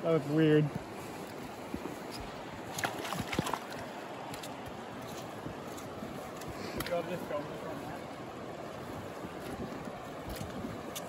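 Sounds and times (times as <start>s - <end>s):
wind on microphone: 0.7s - 11.0s.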